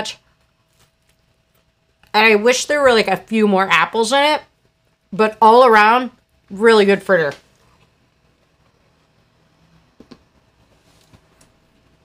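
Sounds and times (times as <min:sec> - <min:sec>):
woman speaking: 0:00.0 - 0:00.2, 0:02.0 - 0:04.5, 0:05.1 - 0:07.5.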